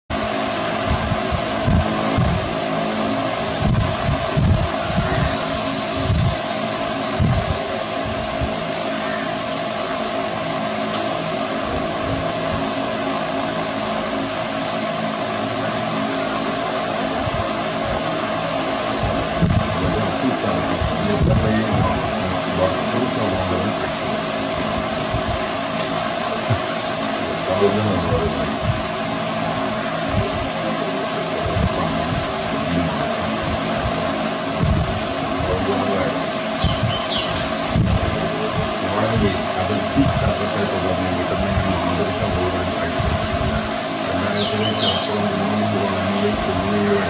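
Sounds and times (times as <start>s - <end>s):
mechanical hum with held tone: 0.1s - 47.0s.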